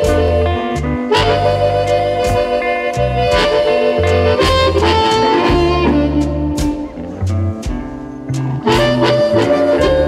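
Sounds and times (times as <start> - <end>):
drum strikes: 0.0 - 10.0
electric blues band playing: 0.0 - 10.0.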